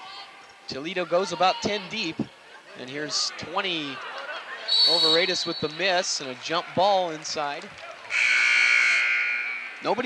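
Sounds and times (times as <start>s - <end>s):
arena horn buzz: 8.1s - 9.8s.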